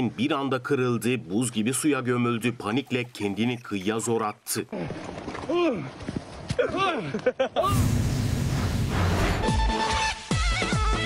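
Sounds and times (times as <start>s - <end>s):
people laughing: 6.6s - 7.8s
whooshing boom with deep rumble: 7.7s - 9.5s.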